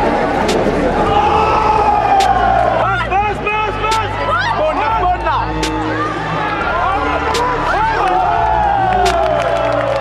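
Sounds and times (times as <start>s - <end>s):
steady low bass: 0.0s - 9.4s.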